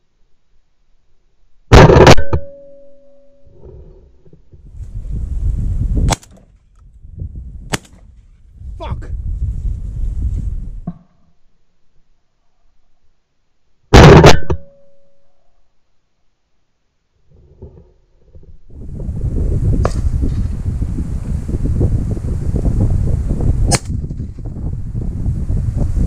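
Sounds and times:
shotgun shot: 1.7s - 2.6s, 6.0s - 6.4s, 7.7s - 8.1s, 14.0s - 14.7s, 19.8s - 20.1s, 23.7s - 24.4s
wind buffeting microphone: 4.6s - 10.9s, 18.4s - 26.0s
sharp clicks: 6.1s - 6.9s, 7.7s - 8.0s.

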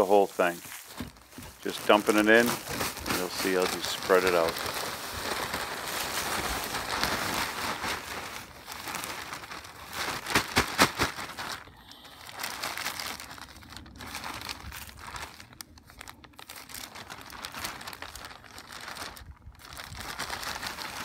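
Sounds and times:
plastic bag crinkling: 0.0s - 21.0s.

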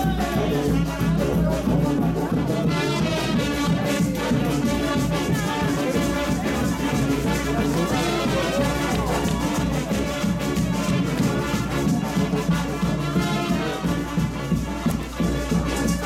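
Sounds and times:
brass band playing: 0.0s - 16.0s
steady drum beat: 0.0s - 16.0s.

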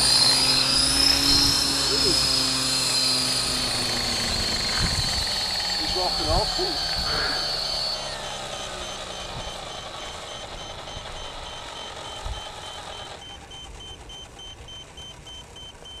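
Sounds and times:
helicopter rotor slowing: 0.0s - 16.0s
rapid high beeping: 0.0s - 16.0s.

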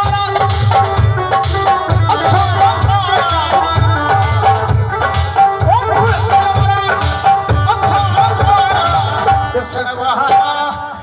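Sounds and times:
hand drums: 0.0s - 10.5s.

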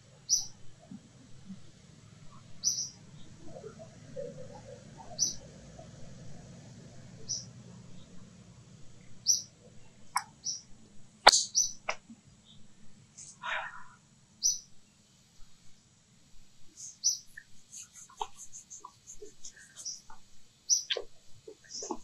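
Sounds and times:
faint low hum: 0.0s - 22.0s
bird chirping: 0.1s - 6.1s, 7.2s - 8.2s, 9.0s - 12.7s, 14.4s - 15.2s, 16.6s - 22.0s.

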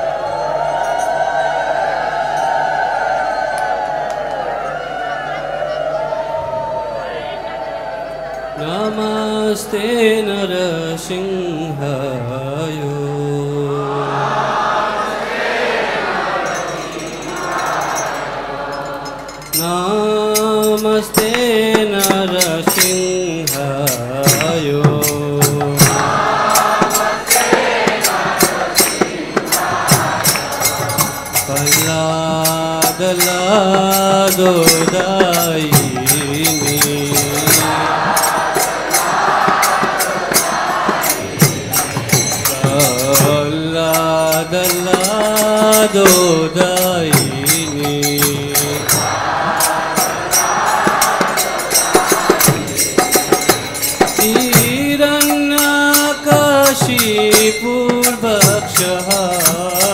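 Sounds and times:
metallic jingling beat: 0.0s - 4.3s, 14.7s - 59.9s
crowd chanting together: 0.0s - 20.3s, 21.2s - 55.4s
sharp percussion strikes: 14.7s - 59.9s.

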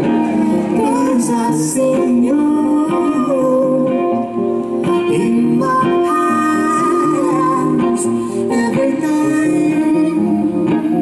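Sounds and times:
acoustic guitar: 0.0s - 11.0s
person singing gliding notes: 4.9s - 11.0s.

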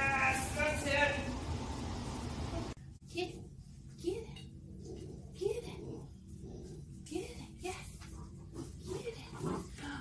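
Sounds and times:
puppy growling and grunting: 4.7s - 7.0s, 8.0s - 10.0s.

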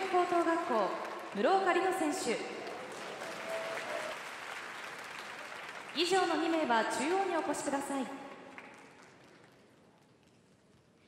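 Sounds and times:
audience applauding: 0.0s - 6.7s, 8.5s - 9.8s.

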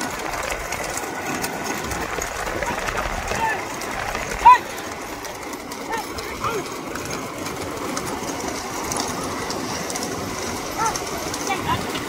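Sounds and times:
bullocks and carts running: 0.0s - 12.0s
voices shouting: 0.7s - 7.5s, 10.0s - 12.0s.

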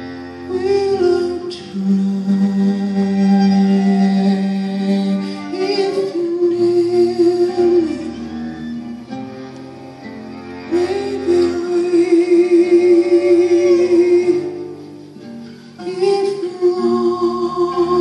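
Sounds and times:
acoustic guitar: 0.0s - 18.0s
cello: 0.0s - 18.0s
saxophone: 0.0s - 18.0s
violin: 0.0s - 18.0s.

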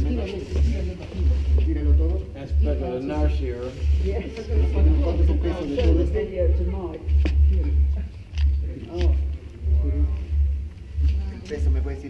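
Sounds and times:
heavy low rumble: 0.0s - 12.0s
low voices: 0.0s - 12.0s.

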